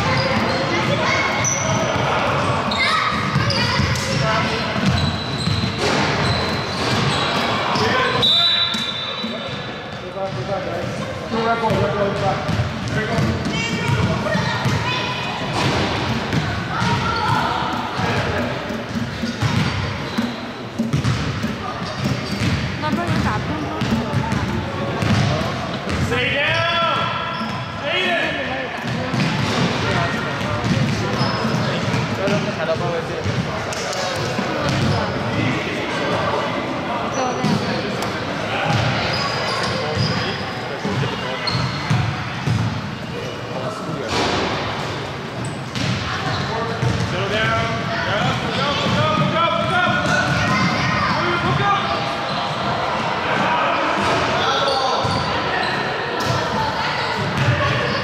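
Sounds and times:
basketball bouncing on wooden floor: 18.0 - 26.0.

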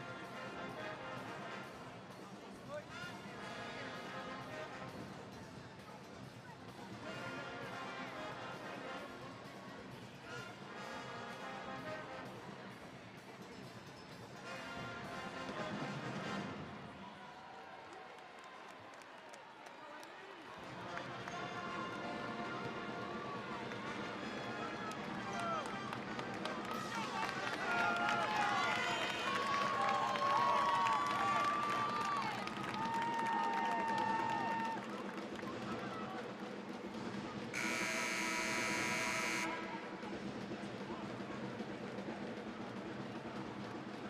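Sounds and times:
music over arena speakers: 0.0 - 17.0, 20.6 - 44.0
crowd murmur: 20.0 - 44.0.

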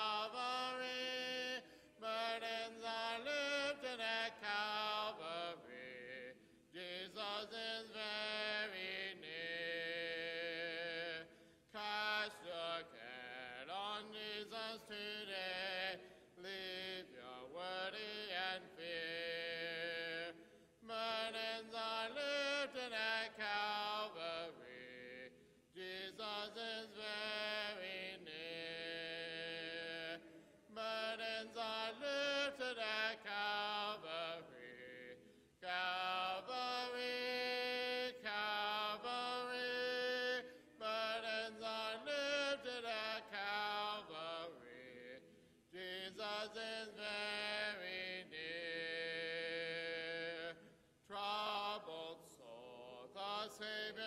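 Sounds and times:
congregation singing a hymn: 0.0 - 54.0.

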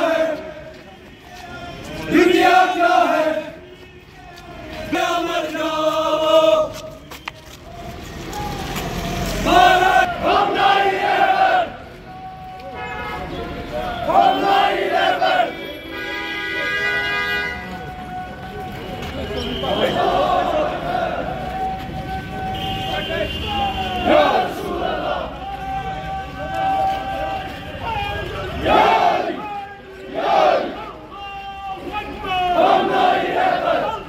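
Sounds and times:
crowd chanting slogans: 0.0 - 15.7, 17.6 - 34.0.

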